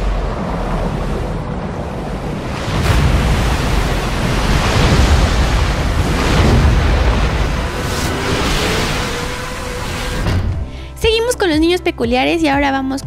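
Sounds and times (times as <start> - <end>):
rushing underwater rumble: 0.0 - 10.8.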